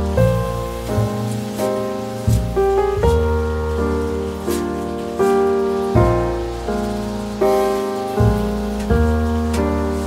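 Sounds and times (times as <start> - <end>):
rain hiss: 0.0 - 10.0
soft piano notes: 0.0 - 10.0.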